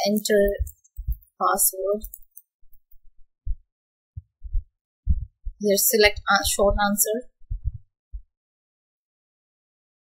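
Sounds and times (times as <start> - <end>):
soft low thumps: 2.7 - 8.4.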